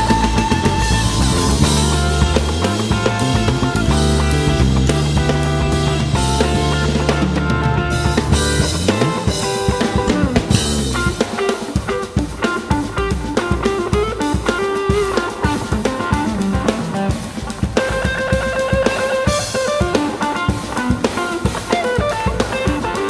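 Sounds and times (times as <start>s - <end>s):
drum kit: 0.0s - 23.0s
electric bass: 0.0s - 23.0s
electric guitar lines: 0.0s - 23.0s.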